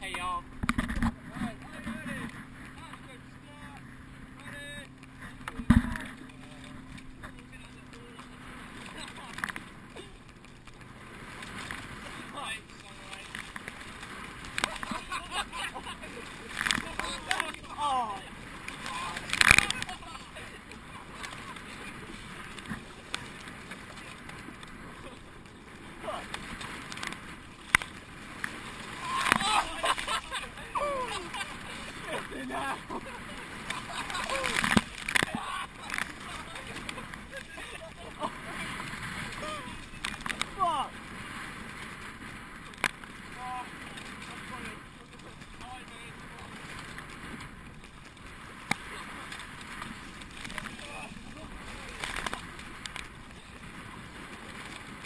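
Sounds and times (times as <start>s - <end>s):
oars splashing in water: 0.0s - 55.0s
rushing water: 0.0s - 55.0s
person calling out: 30.7s - 31.2s, 40.5s - 40.9s.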